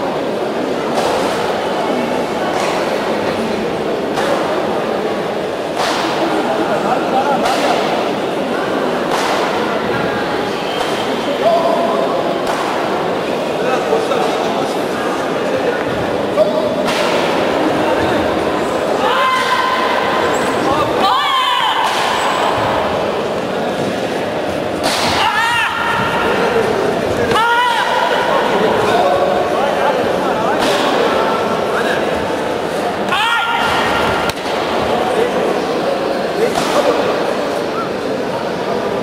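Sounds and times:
echoing background chatter: 0.0 - 39.0
people shouting: 19.0 - 23.0, 24.8 - 26.6, 27.2 - 28.8, 33.1 - 34.3.

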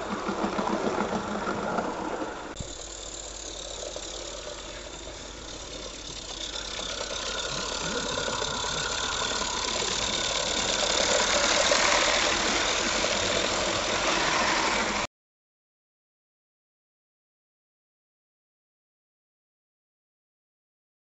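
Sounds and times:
model steam locomotive running: 0.0 - 15.1.

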